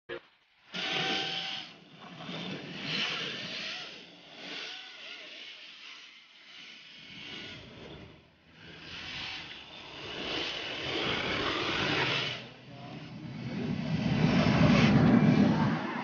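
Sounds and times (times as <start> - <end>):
rc cars hissing past: 0.6 - 16.0
faint voices: 12.3 - 16.0.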